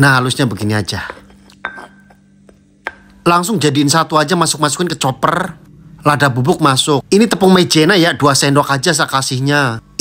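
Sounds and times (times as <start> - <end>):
stone pestle knocking mortar: 1.1 - 3.2.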